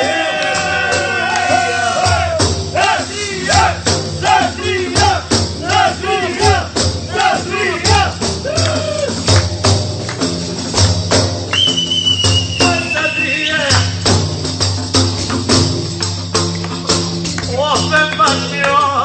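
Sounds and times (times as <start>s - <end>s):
man singing: 0.0s - 8.2s, 17.5s - 19.0s
frame drums with jingles: 0.0s - 19.0s.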